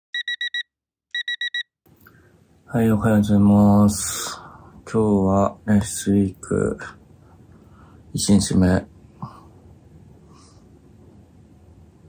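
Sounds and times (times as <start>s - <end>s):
digital alarm clock beeping: 0.1s - 1.8s.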